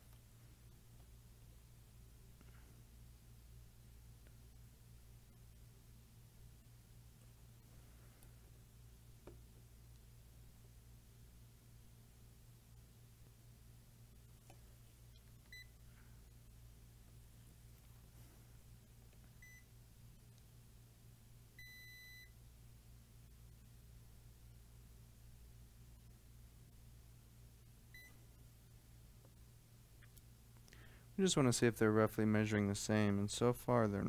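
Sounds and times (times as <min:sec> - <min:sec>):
faint low hum: 0:00.0 - 0:34.0
multimeter beep: 0:15.5 - 0:15.8, 0:19.4 - 0:19.7, 0:21.6 - 0:22.4, 0:27.9 - 0:28.2.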